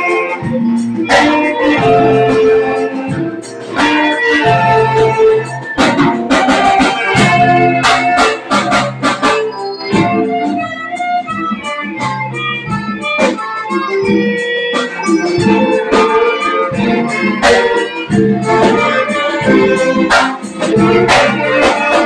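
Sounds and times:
percussive beat: 0.0s - 22.0s
recorders saxophones and violin: 0.0s - 22.0s.

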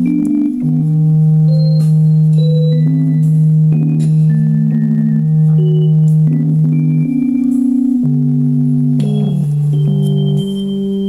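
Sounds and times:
electronic keyboard organ chord: 0.0s - 11.0s.

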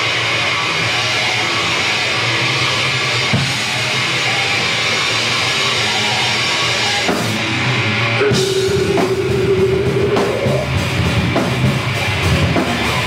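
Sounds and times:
death metal band playing live: 0.0s - 13.0s.

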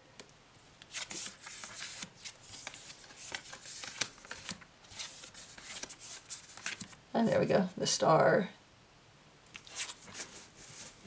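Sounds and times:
cards rustling and ticking: 0.8s - 7.0s, 9.5s - 11.0s.

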